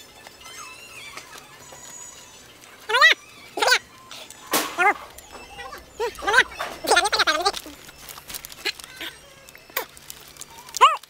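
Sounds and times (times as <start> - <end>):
animal yelping: 0.4 - 11.0.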